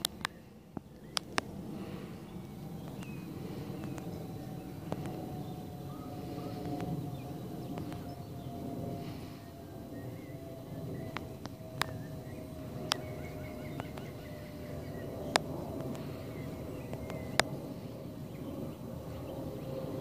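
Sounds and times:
sharp clicks: 0.0s - 5.4s, 6.2s - 7.0s, 7.6s - 8.2s, 11.0s - 12.0s, 13.8s - 14.2s, 15.3s - 16.2s, 16.9s - 17.6s
faint hum: 0.0s - 20.0s.

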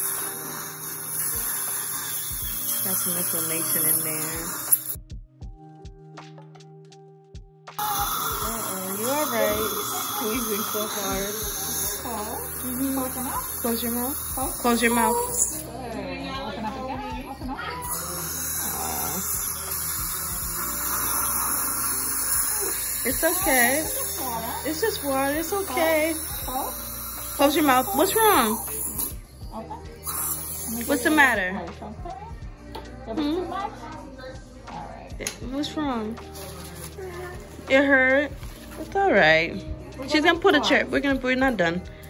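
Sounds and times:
dental instrument hissing: 0.0s - 5.0s, 7.8s - 15.8s, 17.6s - 29.4s, 30.0s - 31.4s.

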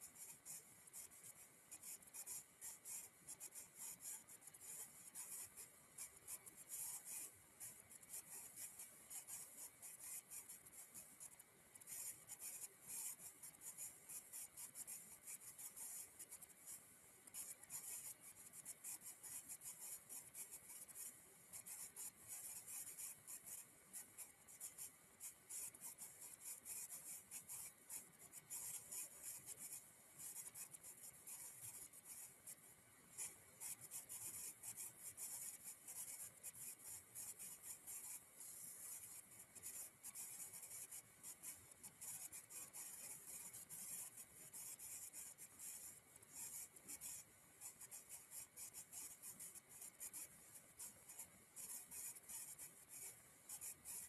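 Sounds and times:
faint high-pitched crackle and hiss: 0.0s - 54.0s.

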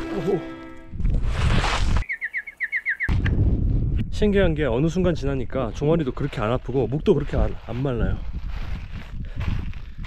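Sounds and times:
bird tweet sound effect: 2.0s - 3.2s.

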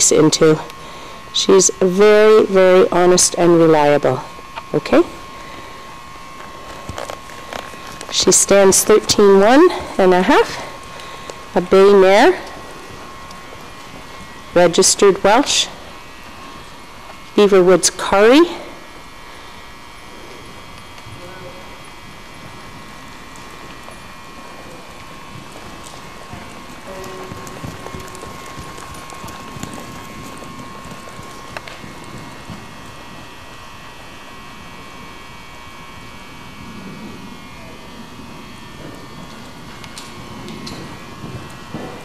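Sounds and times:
faint steady hum: 0.0s - 42.0s
muffled hoofbeats on sand: 22.4s - 33.2s.

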